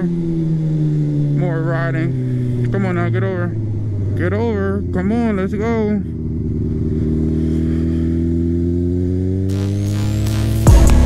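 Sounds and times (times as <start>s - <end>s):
motorcycle engine accelerating: 0.0s - 11.0s
loud music with heavy drum beat: 9.5s - 11.0s.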